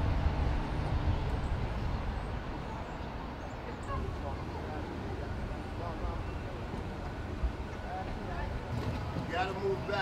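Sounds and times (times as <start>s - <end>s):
low outdoor rumble: 0.0s - 10.0s
distant voices talking: 2.7s - 10.0s.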